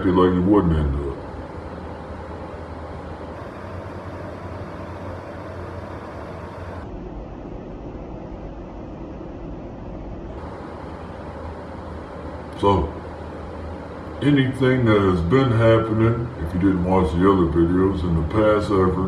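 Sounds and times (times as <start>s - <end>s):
faint hum: 0.0s - 19.0s
low background rumble: 0.0s - 19.0s.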